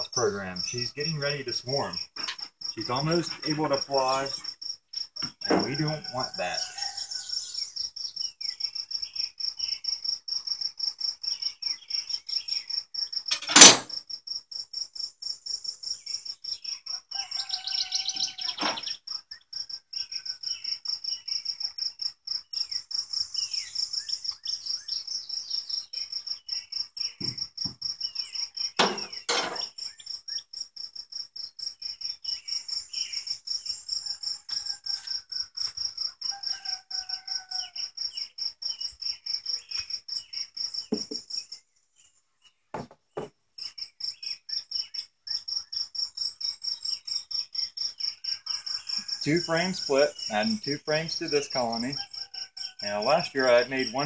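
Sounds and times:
cricket chirping: 0.0 - 54.0
sharp knock: 13.5 - 13.9.

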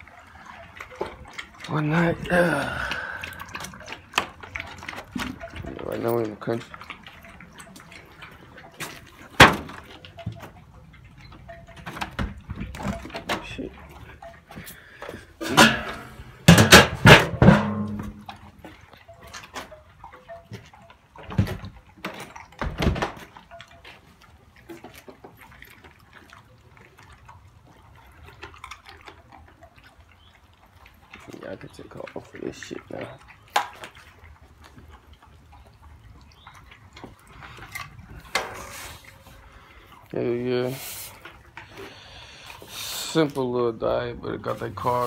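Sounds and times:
dogs chewing and lapping: 0.0 - 45.0.

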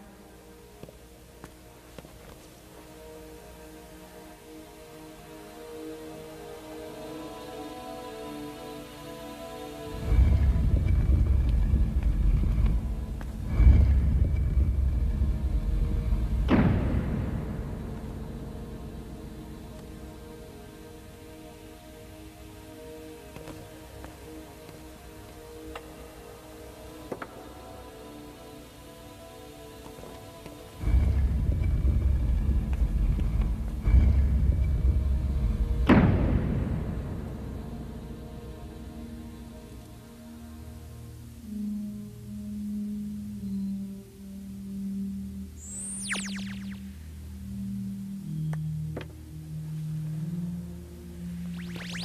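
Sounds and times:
soft film music: 0.0 - 52.0.

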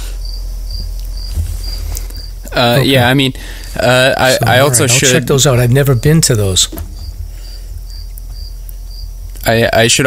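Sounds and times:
cricket chirping: 0.0 - 10.0
steady low hum: 0.0 - 10.0.

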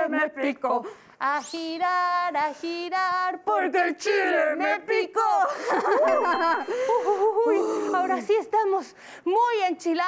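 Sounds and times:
women singing: 0.0 - 8.8
high ringing tone: 1.3 - 2.0, 6.1 - 7.5.

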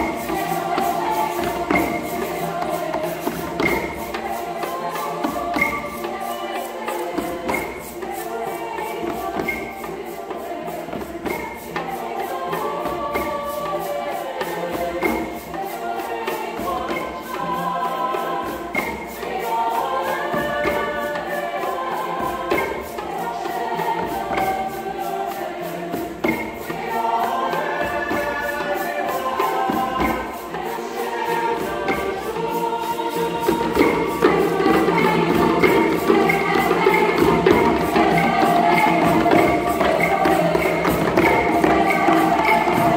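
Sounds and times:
choir singing in harmony: 0.0 - 42.9
hand drums beating: 0.0 - 42.9
hand drums striking: 31.3 - 42.9.

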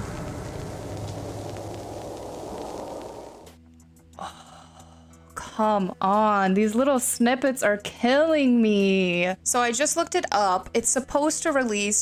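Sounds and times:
deep rumble: 0.0 - 3.6
static-like hiss: 0.0 - 3.6.

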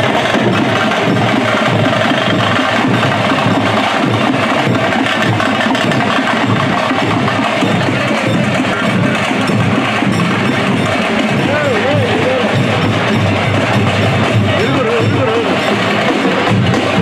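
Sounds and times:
barrel drums beating: 0.0 - 17.0.

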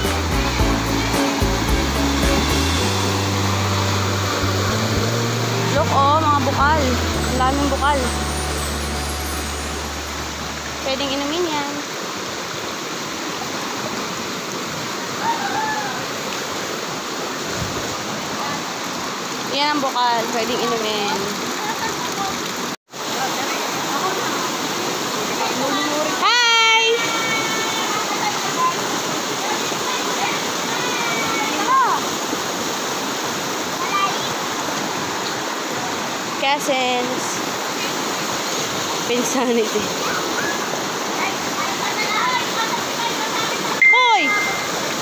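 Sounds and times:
stream water running over rocks: 0.0 - 45.0.

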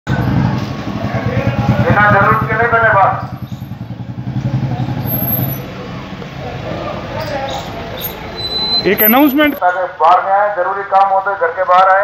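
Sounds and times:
motorcycle engine passing: 0.1 - 9.1
loudspeaker announcement: 1.0 - 3.4, 8.8 - 12.0.

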